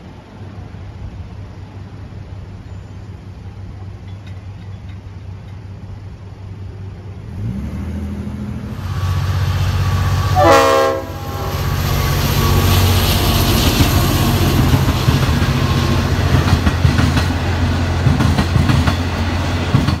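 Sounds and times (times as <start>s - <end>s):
locomotive engine droning: 0.0s - 20.0s
train wheels clicking over rail joints: 3.6s - 6.0s, 11.5s - 20.0s
locomotive horn blast: 9.7s - 13.4s.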